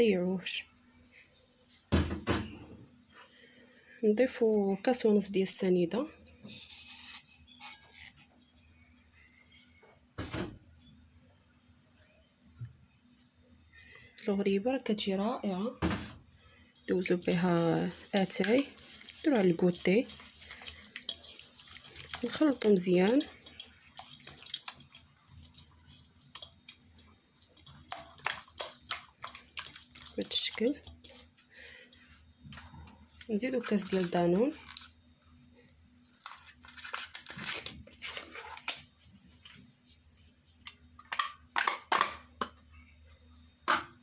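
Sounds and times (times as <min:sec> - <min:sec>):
wet mixture squelching: 0:16.8 - 0:35.0
plastic pot crinkling: 0:16.9 - 0:31.6, 0:33.2 - 0:35.0.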